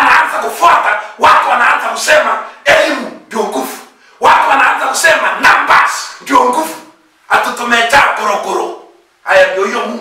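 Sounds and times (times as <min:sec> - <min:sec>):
man preaching loudly: 0:00.0 - 0:10.0.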